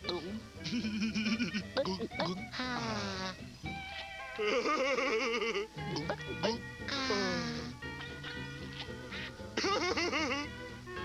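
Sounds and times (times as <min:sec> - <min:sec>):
background music: 0:00.0 - 0:11.0
cartoon voice giggling: 0:00.6 - 0:03.3, 0:04.4 - 0:06.2, 0:09.6 - 0:10.5.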